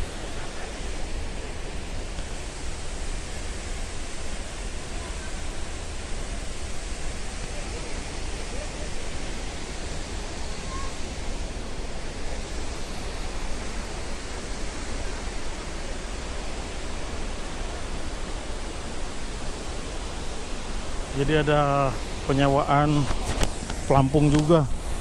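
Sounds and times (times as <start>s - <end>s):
waterfall rushing: 0.0s - 25.0s.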